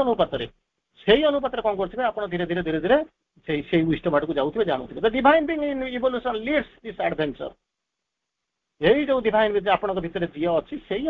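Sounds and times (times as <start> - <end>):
man talking: 0.0 - 7.6, 8.8 - 11.0.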